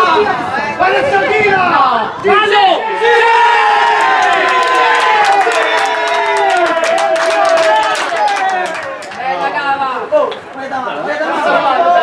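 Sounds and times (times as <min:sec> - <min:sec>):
hand-clapping: 0:04.5 - 0:09.2.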